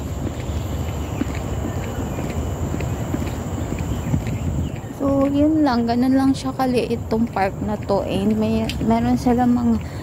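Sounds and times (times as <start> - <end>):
footsteps on a path: 0.0 - 10.0
low rumble on microphone: 0.0 - 10.0.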